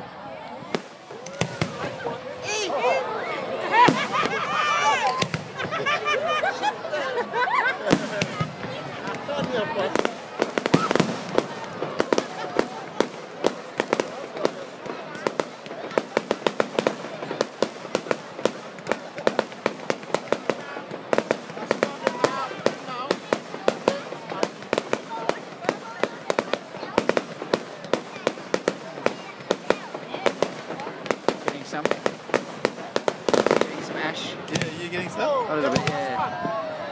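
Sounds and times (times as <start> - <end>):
voices: 0.0 - 36.9
fireworks crackling pops: 0.6 - 2.1, 3.8 - 5.8, 7.9 - 36.6.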